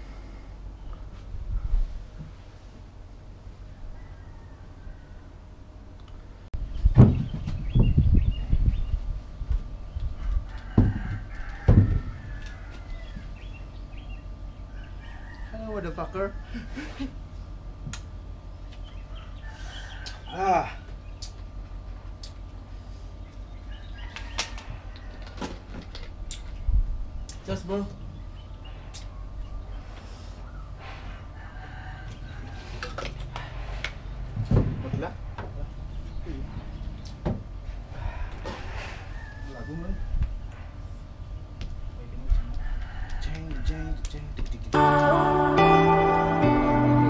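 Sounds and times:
distant rooster crowing: 3.5s - 5.9s, 10.2s - 13.7s, 14.6s - 17.0s, 19.0s - 20.8s, 23.6s - 25.7s, 30.4s - 33.7s, 38.0s - 40.8s, 42.4s - 44.0s
birds chirping: 6.6s - 10.2s, 12.9s - 15.1s.

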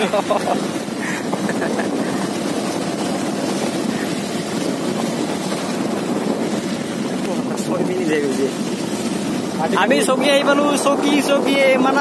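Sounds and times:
vehicle rumbling on dirt road: 0.0s - 12.0s
wind buffeting microphone: 0.0s - 12.0s.

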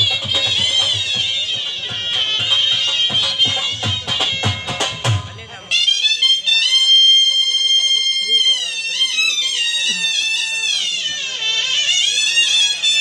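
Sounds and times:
dhol beats: 0.0s - 6.5s
shehnai playing: 0.0s - 13.0s.

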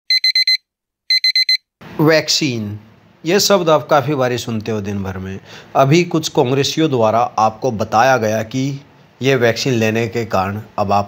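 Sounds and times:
electronic alarm beeping: 0.1s - 1.6s.

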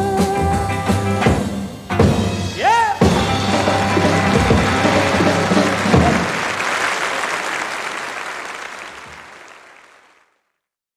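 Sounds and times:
live band playing: 0.0s - 9.4s
audience applause: 3.2s - 10.5s.

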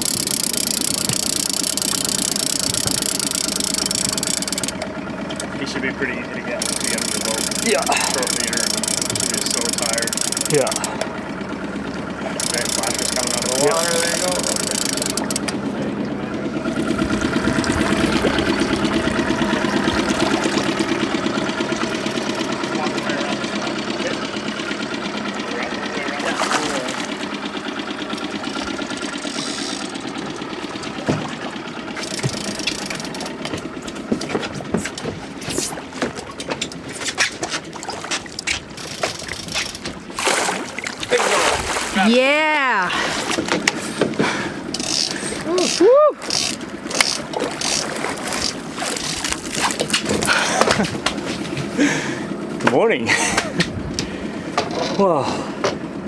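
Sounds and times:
outboard motor running: 0.0s - 56.0s
fish splashing at surface: 26.2s - 27.2s, 37.2s - 42.1s, 46.3s - 50.9s.

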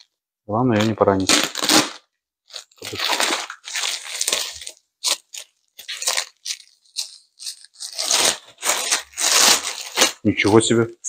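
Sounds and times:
plastic bag rustling and crinkling: 0.7s - 10.8s.

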